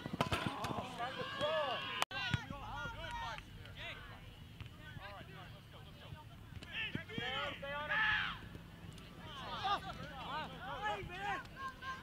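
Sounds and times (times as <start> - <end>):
players calling and shouting: 0.0 - 12.0.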